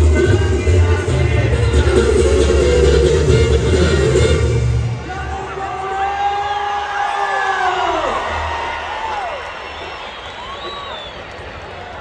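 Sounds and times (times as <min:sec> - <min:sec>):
person singing: 0:00.0 - 0:03.4
live band music: 0:00.0 - 0:05.9.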